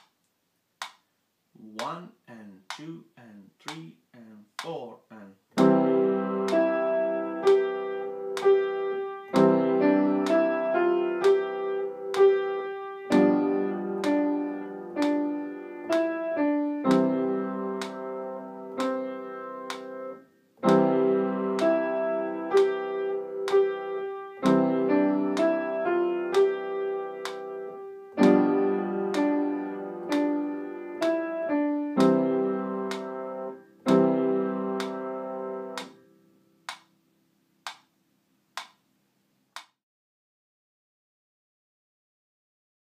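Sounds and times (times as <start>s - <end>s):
piano broken chord exercise: 5.6s - 36.7s.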